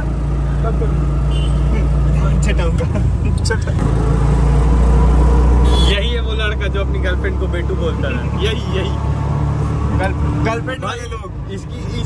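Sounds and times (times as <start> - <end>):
auto-rickshaw engine droning: 0.0 - 12.0.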